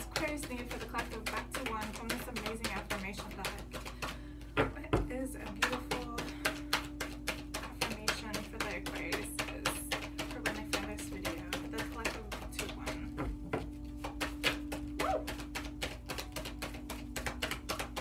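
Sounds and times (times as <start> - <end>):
cards being shuffled: 0.0 - 4.6, 5.4 - 18.0.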